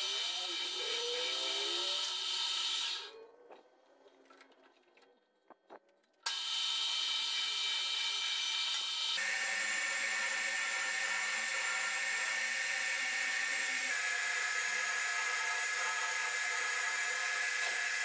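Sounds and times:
metal lathe whining: 0.0 - 3.1, 6.3 - 18.0
tool cutting spinning metal tube: 0.0 - 3.1, 6.3 - 18.0.

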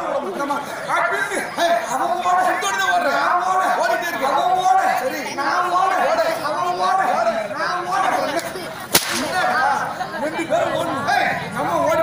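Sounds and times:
voices on stage: 0.0 - 12.0
sharp crack of stage blow: 8.9 - 9.3.

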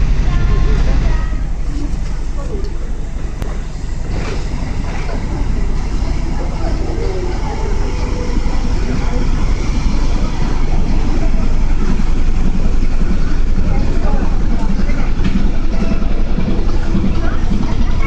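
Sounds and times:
faint voices: 0.0 - 18.0
tugboat diesel engine rumble: 0.0 - 18.0.

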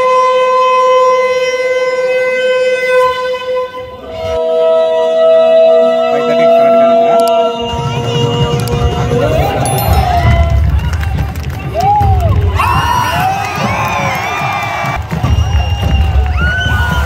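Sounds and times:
crowd noise: 6.0 - 17.0.

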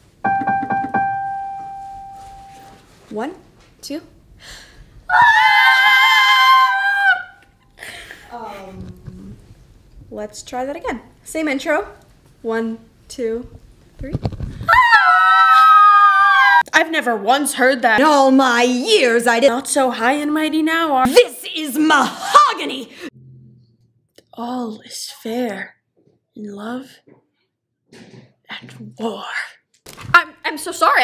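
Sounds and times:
digital piano high note: 0.2 - 2.9.

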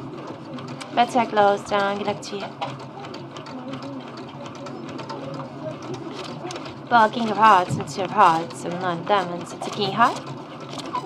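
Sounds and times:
faint voices: 0.0 - 10.2.

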